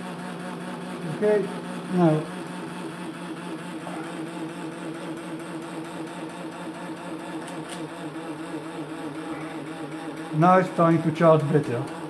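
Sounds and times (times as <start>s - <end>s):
generator humming: 0.0s - 12.0s.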